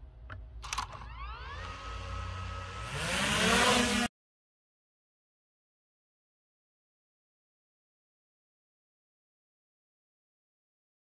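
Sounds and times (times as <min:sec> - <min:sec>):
drone propellers whining: 0:01.0 - 0:04.1.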